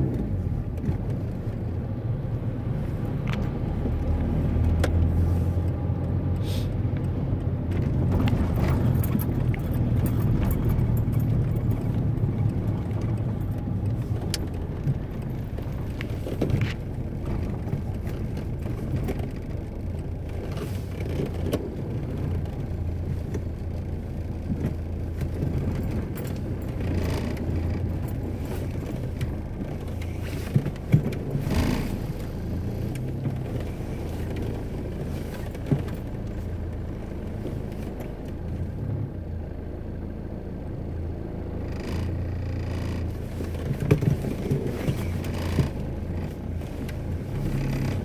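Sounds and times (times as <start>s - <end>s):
car engine and road noise: 0.0s - 48.0s.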